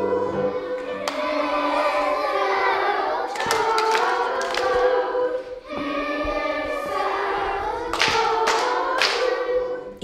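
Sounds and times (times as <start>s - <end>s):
children singing together: 0.0s - 10.0s.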